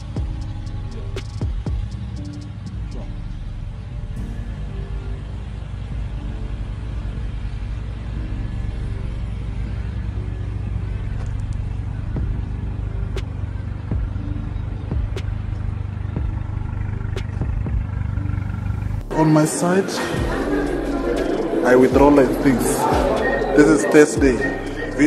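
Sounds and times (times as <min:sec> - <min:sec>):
car engine idling: 0:00.0 - 0:25.0.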